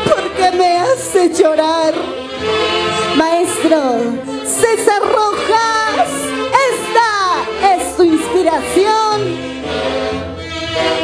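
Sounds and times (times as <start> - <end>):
band music: 0.0 - 11.0
saxophones holding notes: 0.0 - 11.0.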